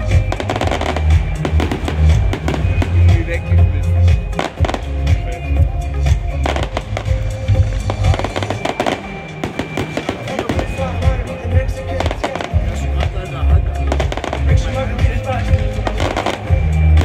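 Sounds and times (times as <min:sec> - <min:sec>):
fireworks bursting and crackling: 0:00.0 - 0:17.0
loud music with heavy bass: 0:00.0 - 0:17.0.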